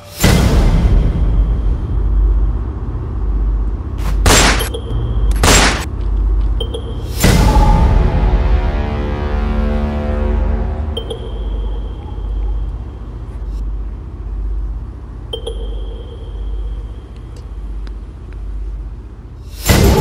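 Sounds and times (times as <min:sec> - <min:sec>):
low rumbling drone: 0:00.0 - 0:04.0, 0:04.6 - 0:20.0.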